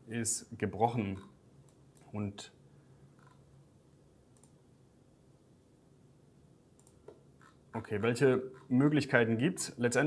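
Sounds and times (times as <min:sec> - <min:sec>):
faint low hum: 0:00.0 - 0:10.0
computer mouse clicks: 0:04.3 - 0:04.6, 0:06.8 - 0:07.6.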